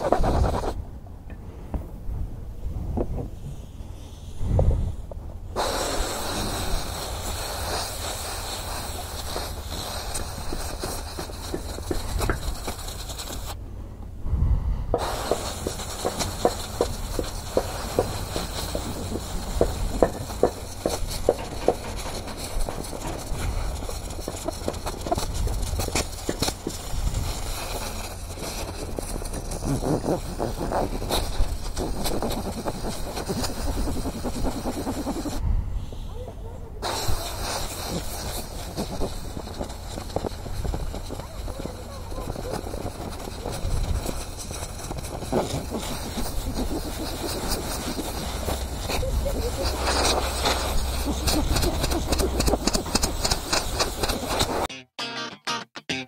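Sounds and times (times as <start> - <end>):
compressed air blow gun hissing: 3.3 - 13.6, 14.9 - 36.0, 36.8 - 54.7.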